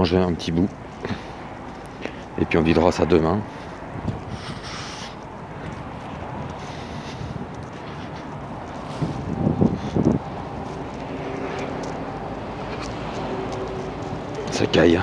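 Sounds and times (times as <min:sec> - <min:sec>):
wind buffeting microphone: 0:00.0 - 0:15.0
low engine hum: 0:03.3 - 0:15.0.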